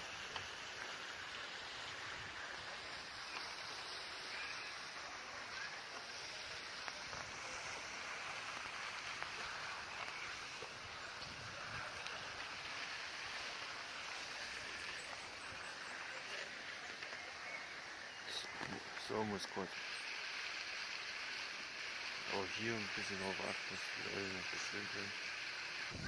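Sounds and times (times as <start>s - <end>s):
outdoor background hiss: 0.0s - 26.0s
man talking: 18.3s - 19.7s, 22.3s - 25.1s.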